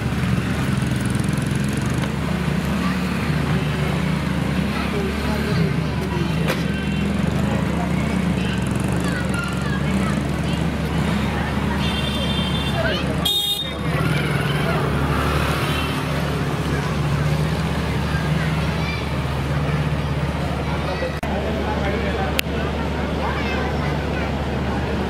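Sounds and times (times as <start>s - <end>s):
motorcycle engines in traffic: 0.0s - 25.0s
people's voices: 0.0s - 25.0s.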